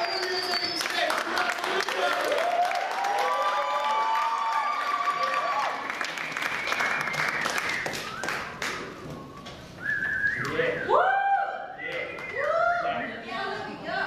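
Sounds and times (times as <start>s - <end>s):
audience applause: 0.0s - 9.0s
whooping and whistling: 6.4s - 12.8s.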